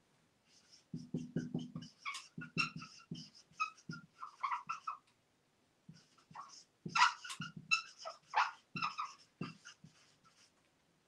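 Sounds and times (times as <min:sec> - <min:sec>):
marker squeaking on a whiteboard: 0:00.5 - 0:05.1, 0:05.9 - 0:10.6
marker knocking on a board: 0:00.9 - 0:04.2, 0:05.9 - 0:08.0, 0:08.7 - 0:10.0.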